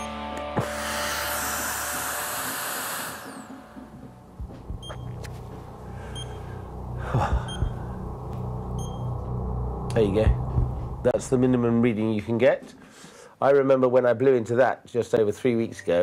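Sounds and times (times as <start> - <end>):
breath blown into mouthpiece: 0.6 - 3.5
low hum: 0.7 - 12.2.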